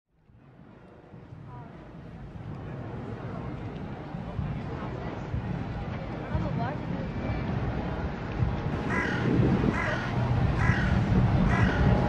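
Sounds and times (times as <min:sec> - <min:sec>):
bird calling: 0:08.8 - 0:11.9.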